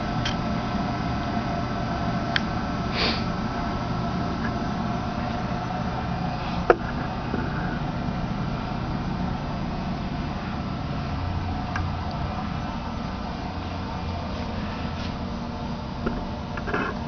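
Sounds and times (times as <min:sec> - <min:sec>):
electric motor hum: 0:00.0 - 0:17.0.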